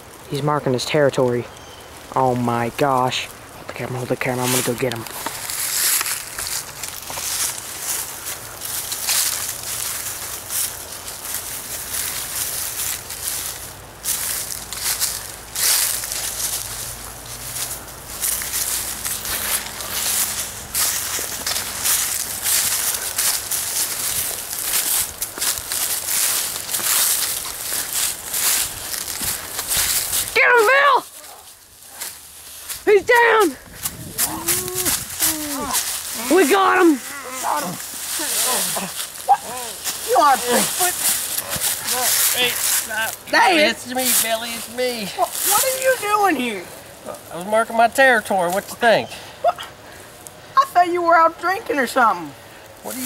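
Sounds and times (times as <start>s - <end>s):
footsteps running through dry leaves: 4.4s - 46.4s
person yelling: 30.3s - 31.5s, 32.9s - 41.1s, 41.8s - 43.9s, 44.9s - 46.6s.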